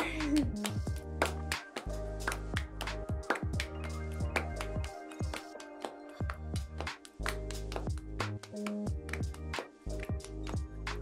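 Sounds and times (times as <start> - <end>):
held bass line: 0.0 - 4.9
music with steady beat: 0.0 - 11.0.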